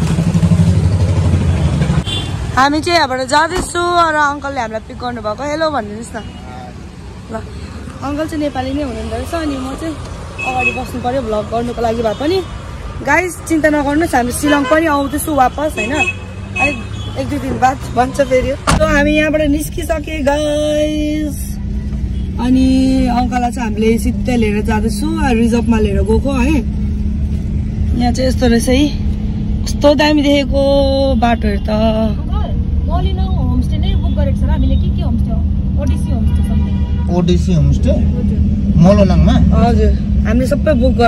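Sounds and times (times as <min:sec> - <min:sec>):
car engine rumble: 0:00.0 - 0:41.0
road noise: 0:00.0 - 0:41.0
engine idling: 0:37.2 - 0:41.0.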